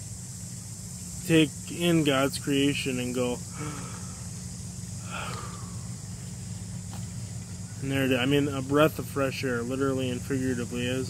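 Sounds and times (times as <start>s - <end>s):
insects droning: 0.0s - 11.0s
low steady hum: 0.0s - 11.0s.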